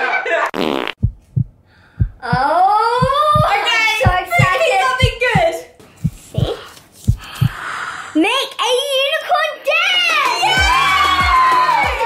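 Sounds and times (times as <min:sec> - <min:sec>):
soft low thumps: 0:00.9 - 0:07.6.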